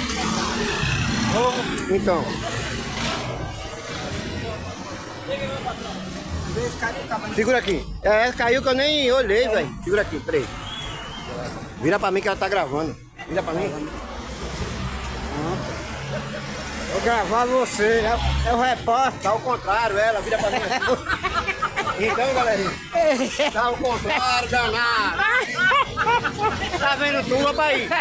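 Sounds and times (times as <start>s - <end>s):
distant voices: 0.0s - 27.9s
street background noise: 0.0s - 28.0s.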